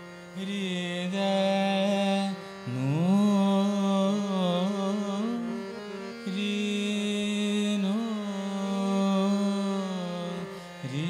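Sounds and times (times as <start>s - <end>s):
man singing classical vocal: 0.0s - 11.0s
tanpura drone: 0.0s - 11.0s.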